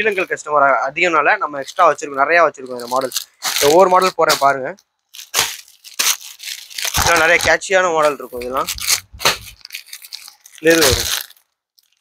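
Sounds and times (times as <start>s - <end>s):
plastic packaging crinkling: 1.6s - 12.0s.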